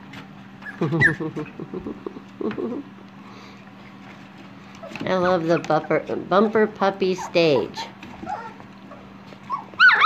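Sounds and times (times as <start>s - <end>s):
puppy high-pitched squeal: 0.6s - 1.2s, 7.2s - 10.0s
puppies squeaking and whining: 0.6s - 1.6s, 4.6s - 6.2s, 7.0s - 10.0s.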